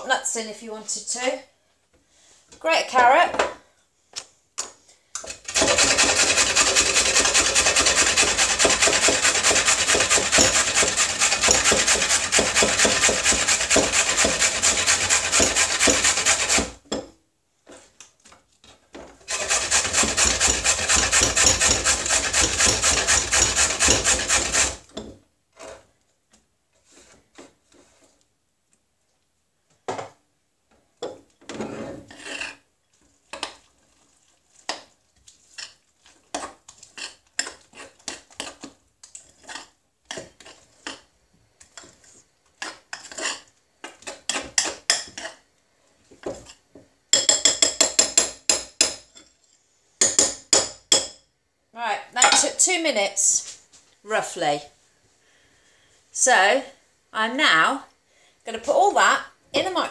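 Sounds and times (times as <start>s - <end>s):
carrot grated on metal grater: 5.4s - 16.8s, 19.3s - 24.8s
spoon stirring batter in glass bowl: 32.1s - 45.4s.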